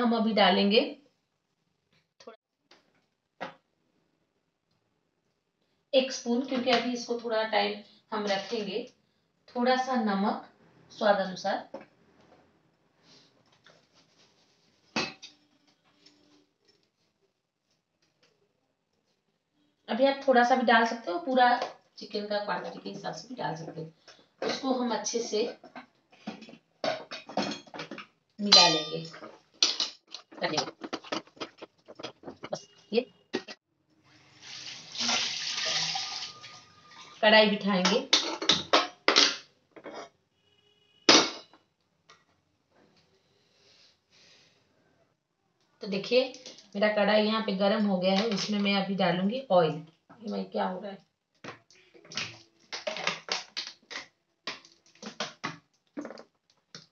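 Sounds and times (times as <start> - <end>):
metal clink on steel pot: 28.4 - 29.2.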